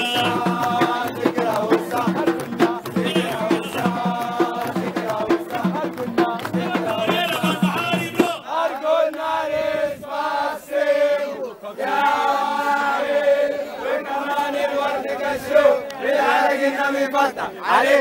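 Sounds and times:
hand drums beating: 0.0s - 8.4s
men singing and chanting: 0.0s - 18.0s.

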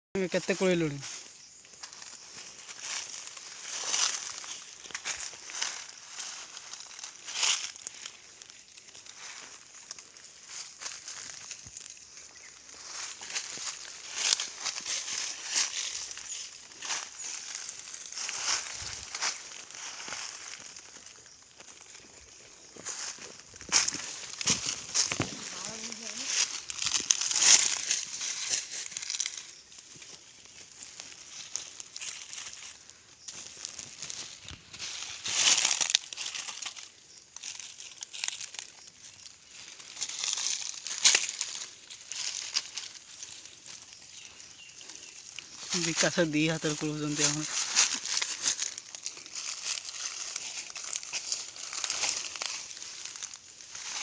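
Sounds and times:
dry leaves rustling and crunching: 0.2s - 54.0s.

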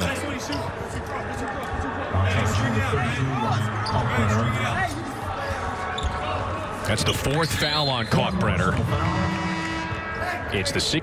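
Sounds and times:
distant voices in arena: 0.0s - 11.0s.

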